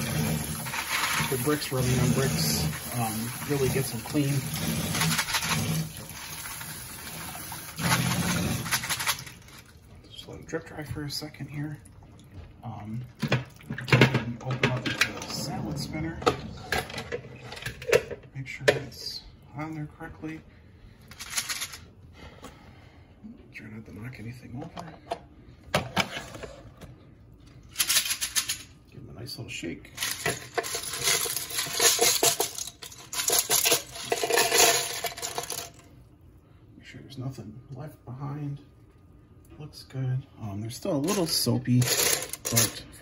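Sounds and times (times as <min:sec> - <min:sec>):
plastic bricks clattering into basket: 0:00.0 - 0:09.6, 0:30.0 - 0:35.8.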